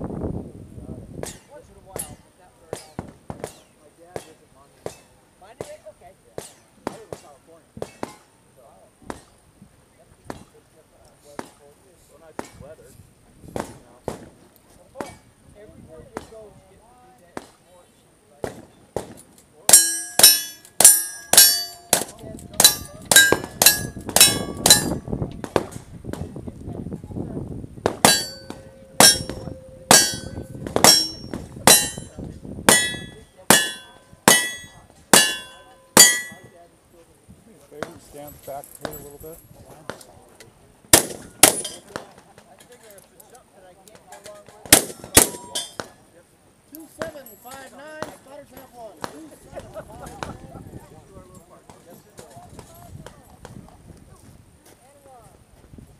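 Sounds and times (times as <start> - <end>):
steel plate target ringing: 19.7 - 25.1, 28.0 - 36.6, 41.0 - 41.8, 44.8 - 45.8.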